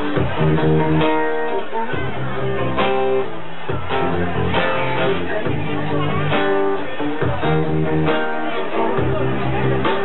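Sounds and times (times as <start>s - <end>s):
acoustic guitar strumming: 0.0s - 10.0s.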